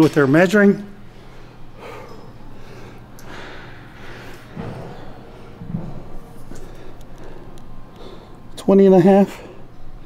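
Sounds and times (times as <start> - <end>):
man breathing hard: 1.1 - 8.5.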